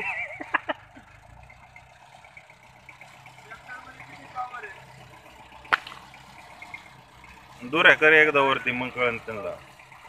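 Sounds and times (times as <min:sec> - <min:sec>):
tractor crawling over gravel: 0:00.0 - 0:10.0
tractor diesel engine rumbling: 0:00.0 - 0:10.0.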